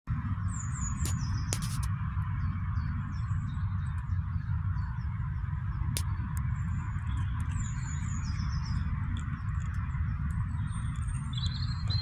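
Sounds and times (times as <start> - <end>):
steady low rumble: 0.1 - 12.0
small birds chirping: 0.4 - 12.0
sharp click: 1.0 - 1.9.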